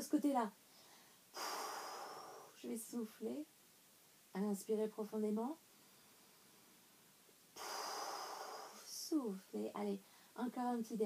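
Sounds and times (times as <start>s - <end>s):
woman breathing in deeply: 0.7s - 2.6s, 7.6s - 8.9s.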